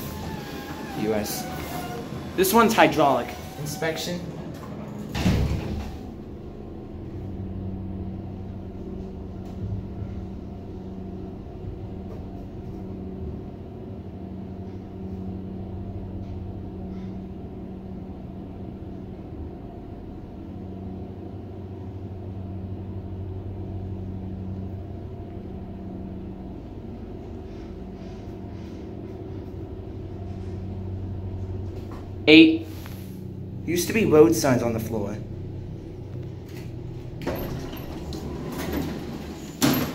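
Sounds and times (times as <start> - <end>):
elevator car rumbling: 0.0 - 39.9
elevator pump humming: 0.0 - 39.9.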